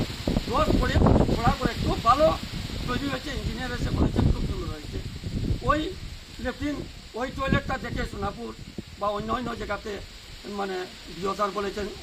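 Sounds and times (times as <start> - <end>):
man speaking: 0.5 - 12.0.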